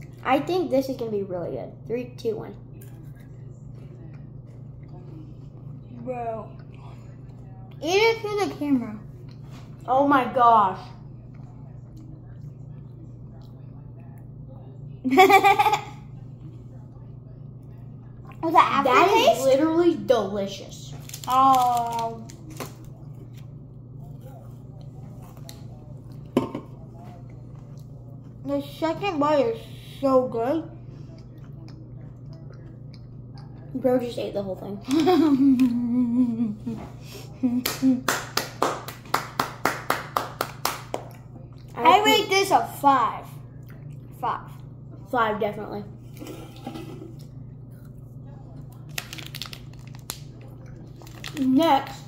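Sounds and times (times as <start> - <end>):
quiet low talk: 0.0 - 52.0
steady low hum: 0.0 - 52.0
quiet chewing with crunches: 2.7 - 7.8, 9.0 - 9.9, 11.0 - 14.9, 20.9 - 28.6, 30.8 - 34.1, 41.0 - 41.8, 43.3 - 45.1, 46.0 - 52.0.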